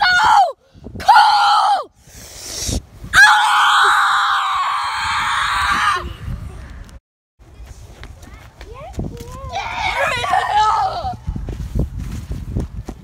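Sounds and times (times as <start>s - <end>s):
young boy screaming: 0.0s - 1.9s, 3.1s - 6.2s, 9.5s - 11.2s.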